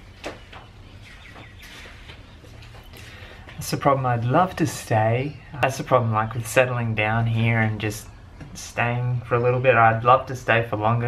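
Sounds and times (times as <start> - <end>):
faint bird chirps: 0.0 - 3.4.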